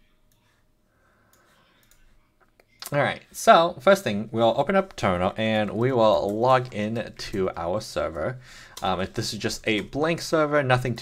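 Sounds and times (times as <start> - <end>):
man speaking: 2.8 - 11.0.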